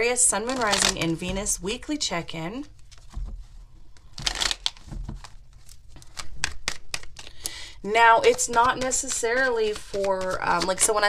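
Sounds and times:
cards shuffling: 0:00.3 - 0:01.8, 0:02.5 - 0:11.0.

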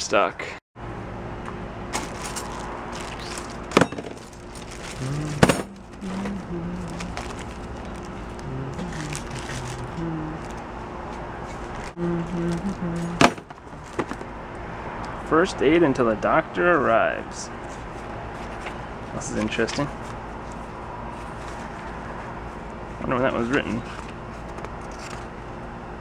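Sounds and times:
items clicking and knocking: 0:02.0 - 0:08.1, 0:13.2 - 0:14.3
plastic bags rustling: 0:02.0 - 0:14.3
slow low tune of held notes: 0:04.8 - 0:10.6, 0:12.0 - 0:13.2.

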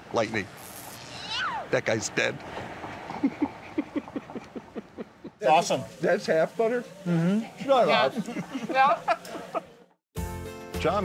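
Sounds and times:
man laughing heartily: 0:03.0 - 0:05.4, 0:08.0 - 0:09.7.

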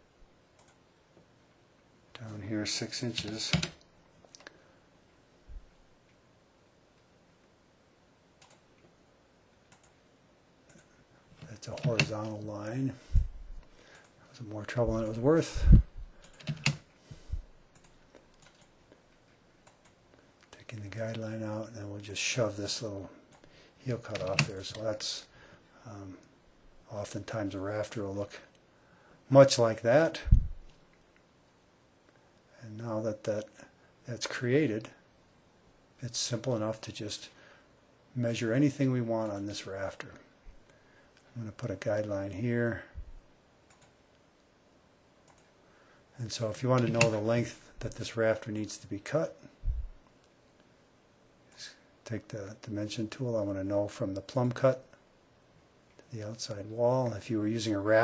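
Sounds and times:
keyboard and mouse clicking: 0:00.6 - 0:00.8, 0:03.1 - 0:04.5, 0:08.4 - 0:08.6, 0:09.7 - 0:10.0, 0:11.7 - 0:12.4, 0:16.2 - 0:16.8, 0:17.7 - 0:18.7, 0:19.6 - 0:20.0, 0:24.1 - 0:24.6, 0:45.2 - 0:45.5.

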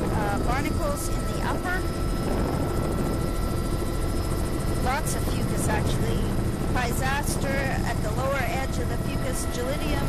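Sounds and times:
helicopter rotor and engine drone: 0:00.0 - 0:10.0.

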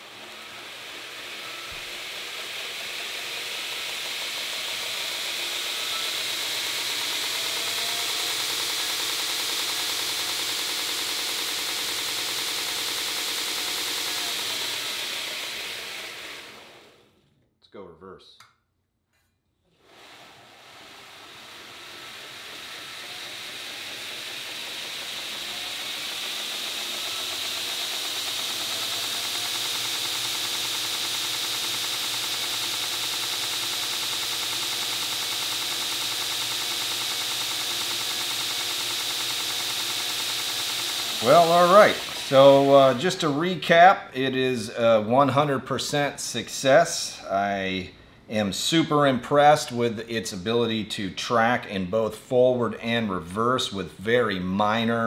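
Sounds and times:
belt grinder running: 0:00.0 - 0:17.2, 0:19.7 - 0:45.6
motor whine: 0:00.0 - 0:17.2, 0:19.8 - 0:44.3.

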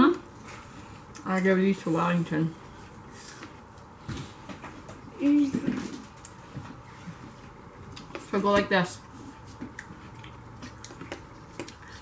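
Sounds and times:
apple being chewed: 0:06.2 - 0:08.3, 0:09.0 - 0:12.0.

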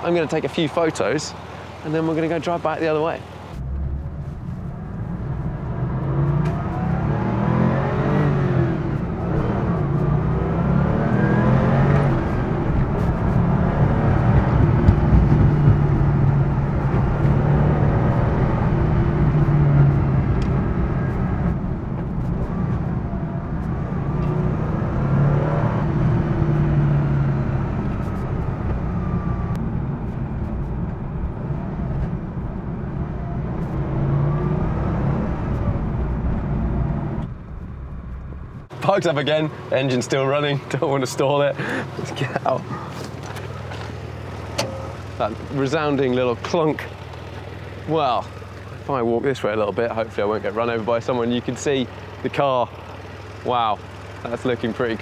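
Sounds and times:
road noise: 0:00.0 - 0:55.0
car engine accelerating: 0:03.5 - 0:55.0.

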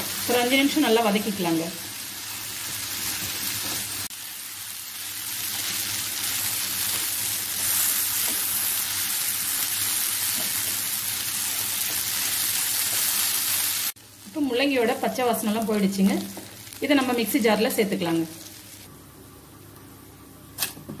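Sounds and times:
vegetables sizzling in oil: 0:00.0 - 0:18.9.

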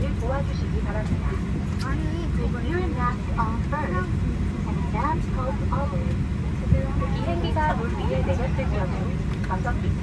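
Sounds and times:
aircraft cabin low rumble: 0:00.0 - 0:10.0
woman speaking over pa system: 0:00.0 - 0:10.0.

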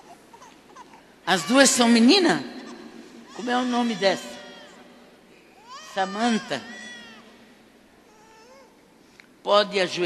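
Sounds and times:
infant whimpering: 0:00.0 - 0:01.1, 0:05.6 - 0:07.3, 0:08.1 - 0:08.8.

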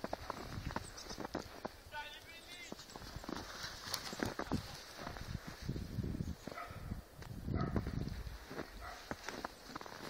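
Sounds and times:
footsteps crunching in snow: 0:00.0 - 0:10.0.

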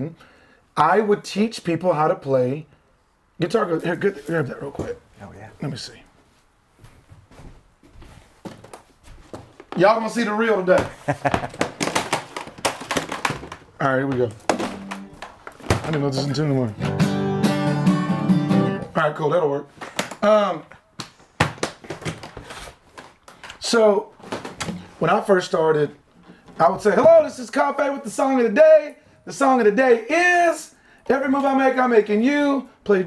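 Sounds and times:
faint knocks and handling noises: 0:06.1 - 0:16.4.

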